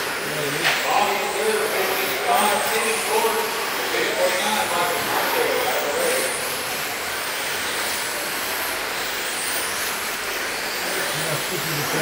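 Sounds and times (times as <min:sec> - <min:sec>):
electric motor whines: 0:00.0 - 0:12.0
motor and tyre noise: 0:00.0 - 0:12.0
faint voices: 0:10.8 - 0:12.0.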